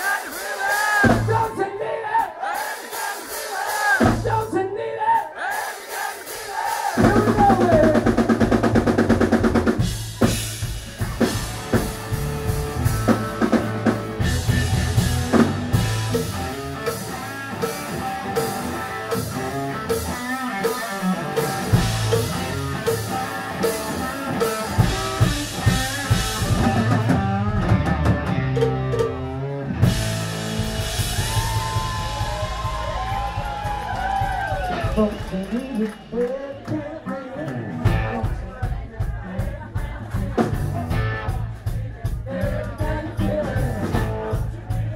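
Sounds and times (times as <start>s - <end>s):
drum kit beating: 0.0s - 4.6s, 5.4s - 44.9s
electric guitar: 8.0s - 38.5s, 40.2s - 41.6s.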